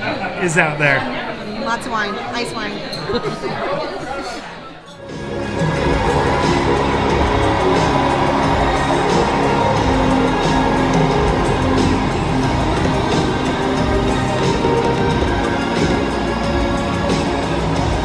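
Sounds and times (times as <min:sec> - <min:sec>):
upbeat music with a beat: 0:05.0 - 0:18.0.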